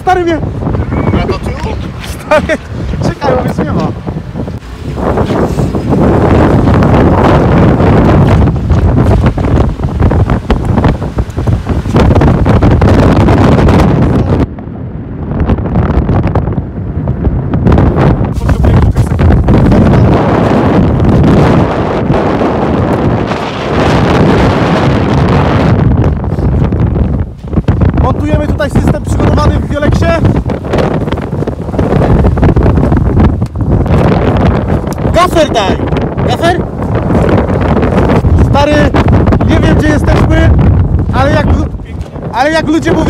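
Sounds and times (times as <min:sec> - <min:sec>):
strong wind on microphone: 0:00.0 - 0:43.0.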